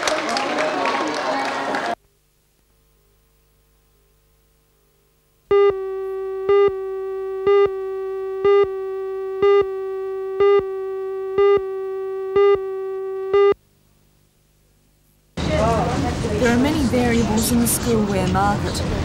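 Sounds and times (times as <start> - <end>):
electronic beeps: 5.5 - 13.6
steady electronic tone: 5.5 - 13.6.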